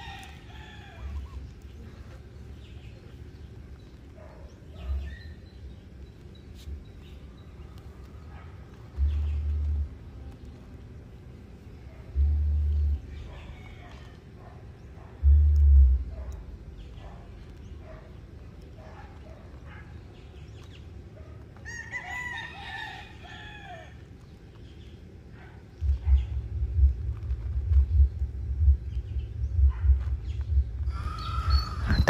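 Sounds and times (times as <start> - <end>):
rooster crowing: 0.0 - 1.4, 21.6 - 24.0, 30.9 - 32.0
low rumbles: 0.0 - 21.2, 24.0 - 32.0.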